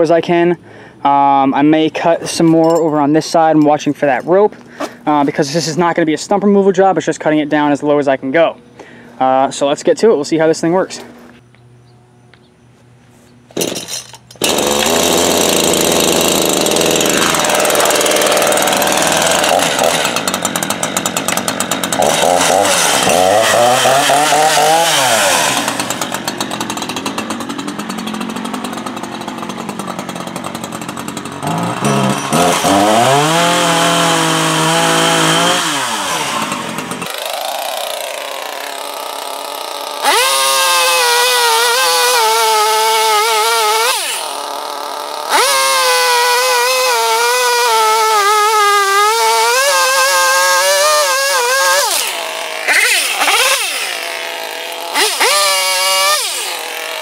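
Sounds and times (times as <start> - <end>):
chainsaw cutting wood: 13.5 - 57.0.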